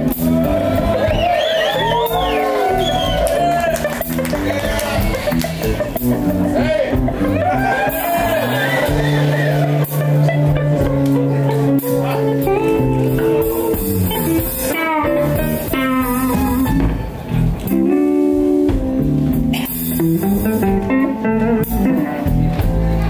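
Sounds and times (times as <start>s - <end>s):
bass guitar: 0.0s - 23.0s
drums: 0.0s - 23.0s
electric guitar solo: 0.0s - 23.0s.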